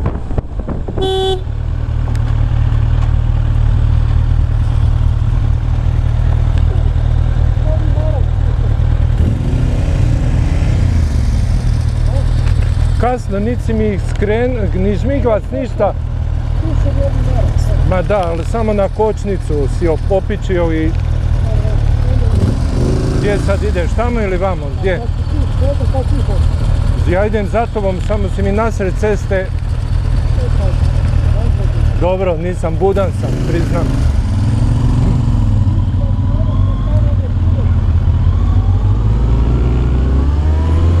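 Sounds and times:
motorcycle engines idling: 1.0 - 38.2
motorcycle engine pulling away: 32.8 - 41.0.

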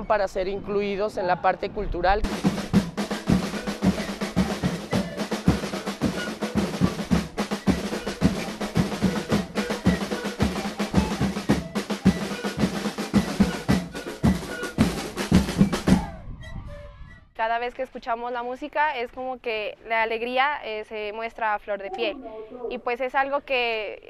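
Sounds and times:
marching drum band playing: 2.2 - 16.2.

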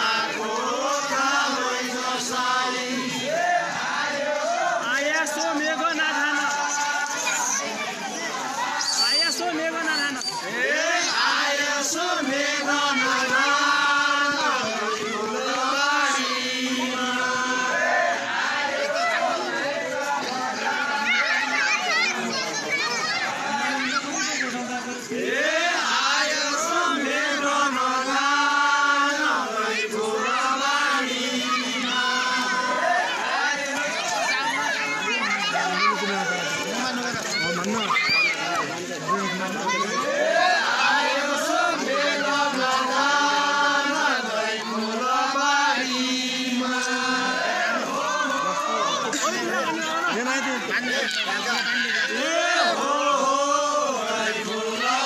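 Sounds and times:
children shouting: 0.0 - 55.0
group of voices chanting: 0.0 - 55.0.

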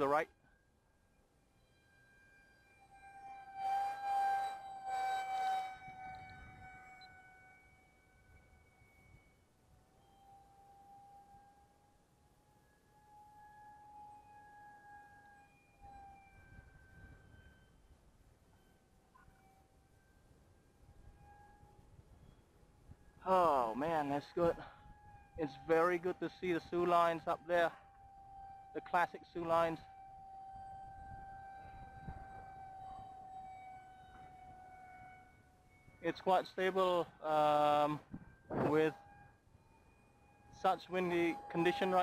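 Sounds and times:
model plane motor whine: 0.0 - 42.0
wind buffeting microphone: 30.6 - 33.3, 38.0 - 38.7.

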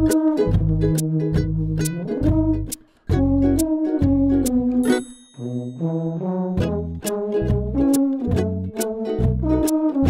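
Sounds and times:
brass chords: 0.0 - 10.0
low tuba line: 0.0 - 10.0.

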